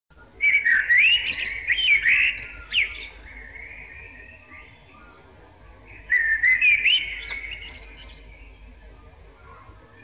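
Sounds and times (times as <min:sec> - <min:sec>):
songbird whistling: 0:00.4 - 0:05.2, 0:05.9 - 0:08.7.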